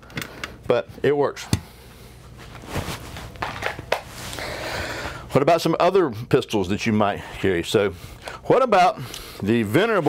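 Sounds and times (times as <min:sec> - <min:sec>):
soft handling rustle: 0:02.2 - 0:04.4.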